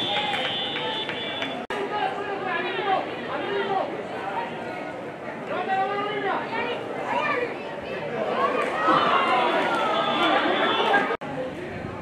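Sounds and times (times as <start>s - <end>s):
many voices chattering: 0.0s - 12.0s.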